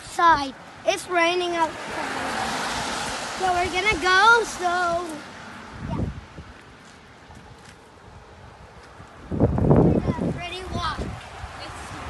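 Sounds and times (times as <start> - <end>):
rain on a wet street: 1.4 - 5.7
wind buffeting microphone: 1.7 - 12.0.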